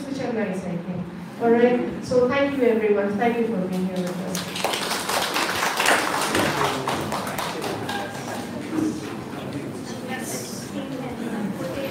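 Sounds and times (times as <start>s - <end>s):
audience applauding: 4.3s - 8.7s.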